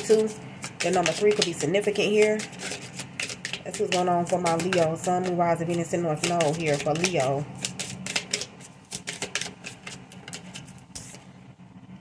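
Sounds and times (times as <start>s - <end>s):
cards being shuffled: 0.0s - 11.2s.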